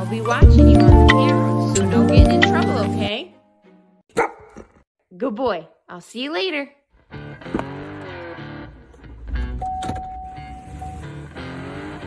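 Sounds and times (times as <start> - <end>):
background music: 0.0 - 3.8
dog barking: 4.1 - 4.8.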